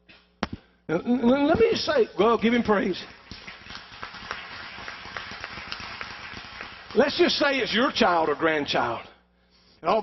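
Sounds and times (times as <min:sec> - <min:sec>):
congregation applauding: 0:02.4 - 0:09.0.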